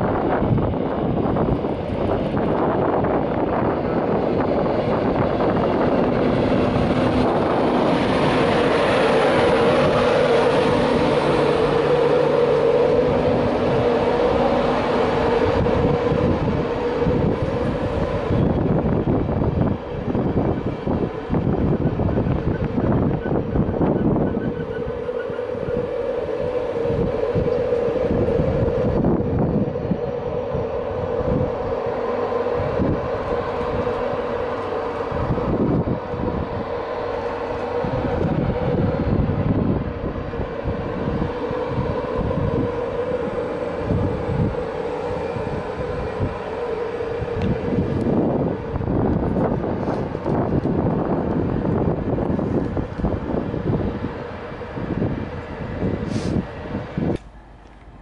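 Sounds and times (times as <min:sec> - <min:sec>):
train whine: 0:00.0 - 0:58.0
wheels rumbling on rail: 0:00.0 - 0:58.0.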